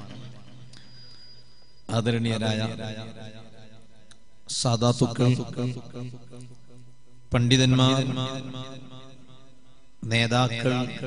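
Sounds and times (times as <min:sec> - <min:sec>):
man chanting: 0:04.5 - 0:06.4, 0:07.3 - 0:08.9, 0:10.0 - 0:11.0.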